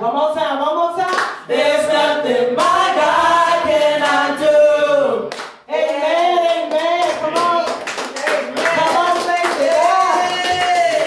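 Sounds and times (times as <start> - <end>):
women singing gospel: 1.0 - 7.6, 8.7 - 11.0
hands clapping: 1.1 - 1.4, 5.3 - 11.0.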